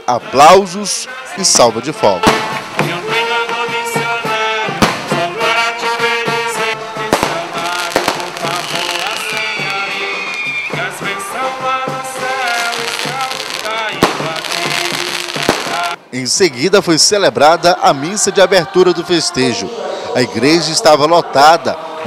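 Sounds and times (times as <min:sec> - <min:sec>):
brass band playing: 0:00.0 - 0:16.1
stick rockets banging: 0:02.2 - 0:03.0
falling high whistle: 0:09.0 - 0:11.0.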